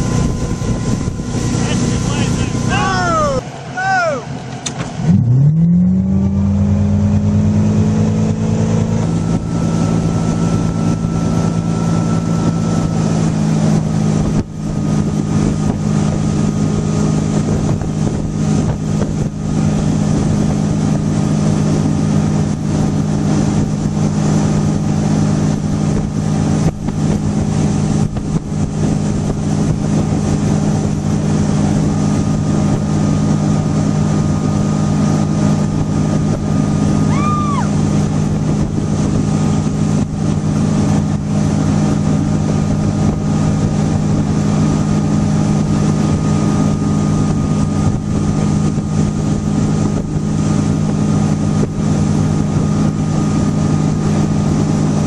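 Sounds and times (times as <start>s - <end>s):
motorboat engine revving: 0.0s - 55.0s
rush of wake and wind: 0.0s - 55.0s.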